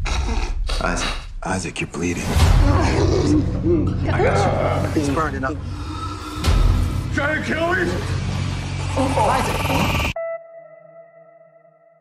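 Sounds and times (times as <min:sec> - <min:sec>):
film trailer score build-up: 0:00.0 - 0:10.2.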